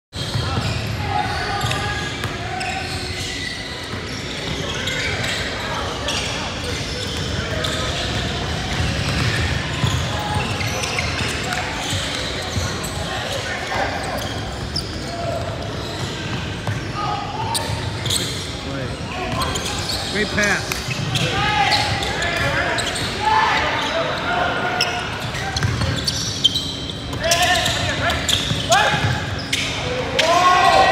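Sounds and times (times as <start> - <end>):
voices of players and onlookers: 0.2 - 30.9.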